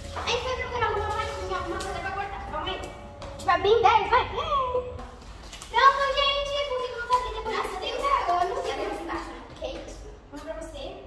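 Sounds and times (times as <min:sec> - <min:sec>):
girl vocalising: 0:04.2 - 0:05.1.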